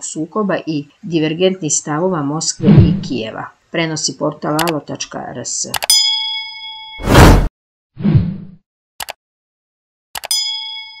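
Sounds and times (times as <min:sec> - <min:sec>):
bell ding: 0:05.9 - 0:07.0, 0:10.2 - 0:11.0.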